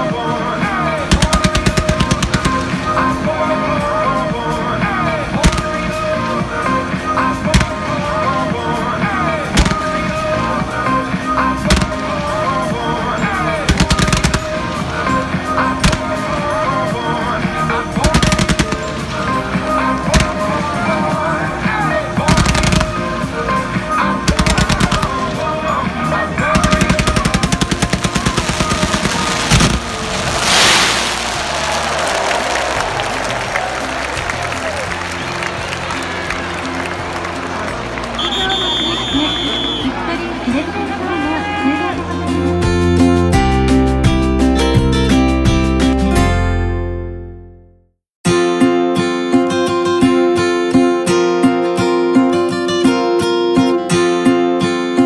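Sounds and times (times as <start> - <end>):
music playing: 0.0 - 47.3, 48.3 - 55.0
fireworks crackling: 0.6 - 3.6, 5.3 - 10.8, 11.5 - 17.2, 17.8 - 21.1, 22.2 - 25.6, 26.4 - 39.2
fireworks bursting: 1.0 - 3.4, 5.4 - 6.2, 7.5 - 8.2, 9.5 - 10.6, 11.6 - 16.7, 18.0 - 20.8, 22.3 - 23.2, 24.3 - 25.4, 26.5 - 34.2
rushing hiss: 27.8 - 32.8.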